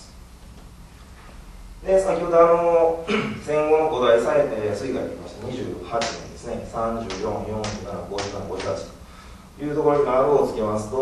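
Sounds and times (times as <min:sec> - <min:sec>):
man speaking: 0:01.8 - 0:09.0, 0:09.6 - 0:11.0
pointer stick tapping table: 0:07.0 - 0:08.8.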